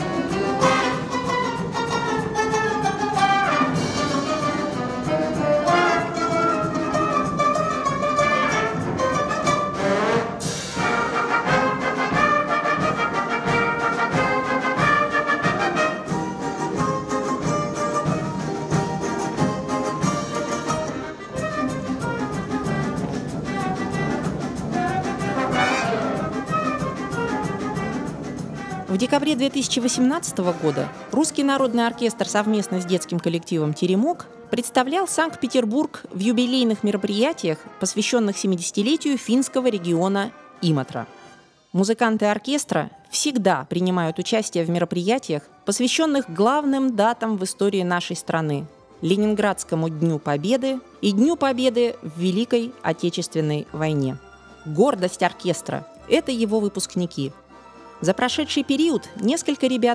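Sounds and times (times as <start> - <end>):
folk orchestra and brass band playing: 0.0 - 42.1, 42.7 - 59.9.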